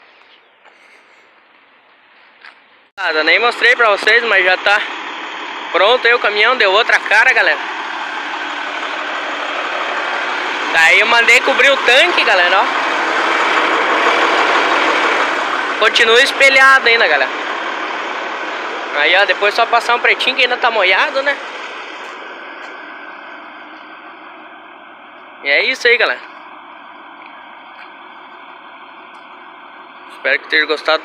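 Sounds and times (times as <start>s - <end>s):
truck diesel engine idling: 0.0s - 31.0s.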